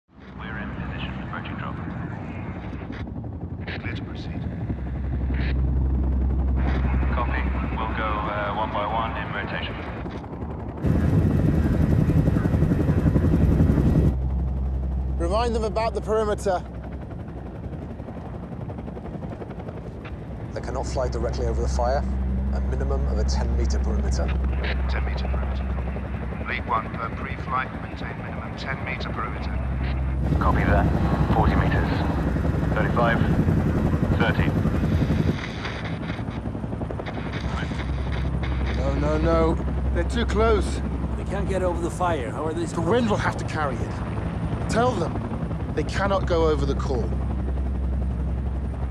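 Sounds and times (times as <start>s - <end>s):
helicopter rotors chopping: 0.3s - 48.9s
engine rumble: 20.0s - 48.9s.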